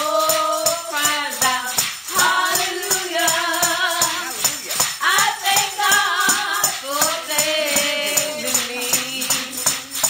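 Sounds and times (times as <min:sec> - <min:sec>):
tambourine shaking: 0:00.0 - 0:10.0
woman singing into a microphone: 0:05.0 - 0:10.0.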